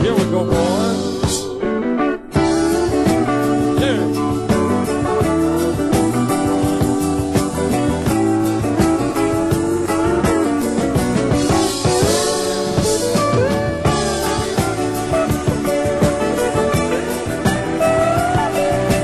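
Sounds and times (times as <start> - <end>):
country band playing: 0.0 - 19.0
electric guitar picking: 0.0 - 19.0.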